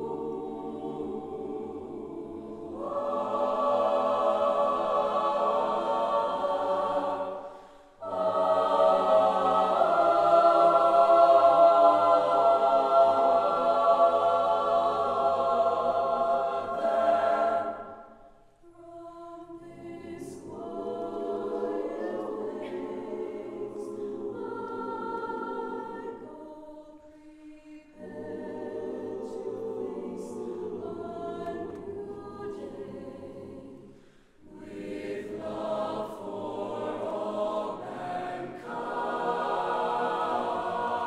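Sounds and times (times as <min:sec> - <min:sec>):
choir singing a cappella: 0:00.0 - 0:41.0.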